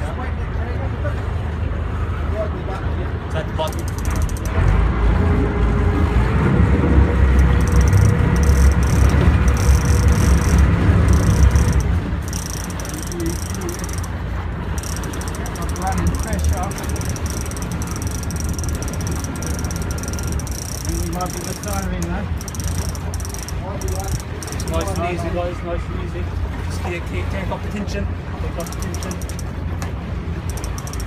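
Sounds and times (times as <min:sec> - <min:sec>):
boat engine rumbling: 0:00.0 - 0:31.0.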